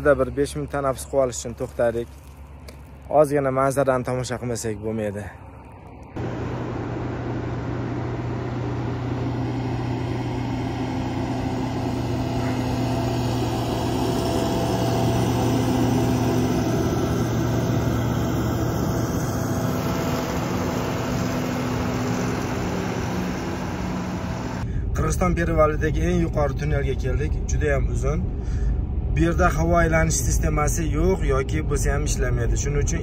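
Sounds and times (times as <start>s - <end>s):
truck diesel engine droning: 4.6s - 25.1s.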